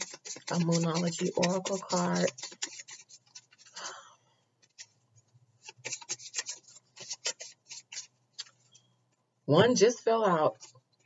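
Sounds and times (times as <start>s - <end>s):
cards being shuffled: 5.6s - 8.7s.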